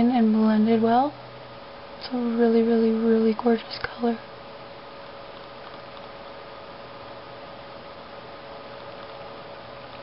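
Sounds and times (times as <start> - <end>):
faint hum: 0.0 - 10.0
room tone hiss: 0.0 - 10.0.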